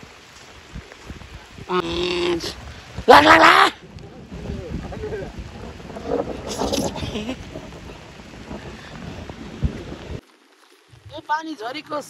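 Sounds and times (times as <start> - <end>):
wind buffeting microphone: 0.0 - 10.2.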